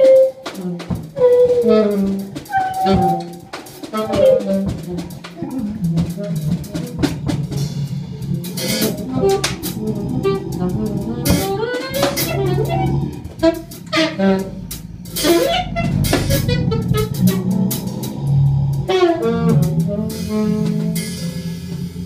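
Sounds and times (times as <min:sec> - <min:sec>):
alto saxophone: 0:00.0 - 0:22.0
drum and cymbal strikes: 0:00.0 - 0:22.0
daxophone sliding lines: 0:00.8 - 0:21.5.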